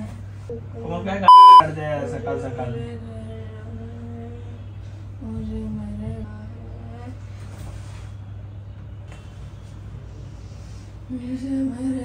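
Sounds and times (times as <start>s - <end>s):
high-pitched censor bleep: 1.3s - 1.6s.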